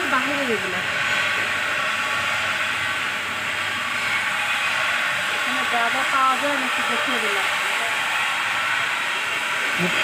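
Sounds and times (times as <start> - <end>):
steady hissing noise: 0.0 - 10.0.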